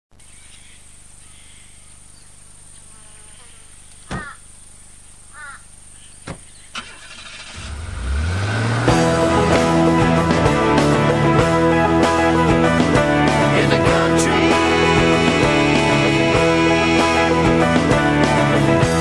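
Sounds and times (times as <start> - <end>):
sharp knocks: 6.2 - 6.5
car engine starting: 6.3 - 11.6
band music with guitar: 8.8 - 19.0.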